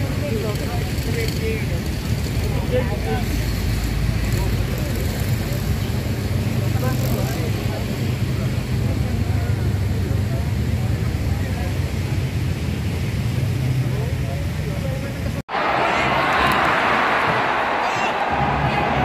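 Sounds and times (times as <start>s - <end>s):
motorcycle engines humming: 0.0s - 15.4s.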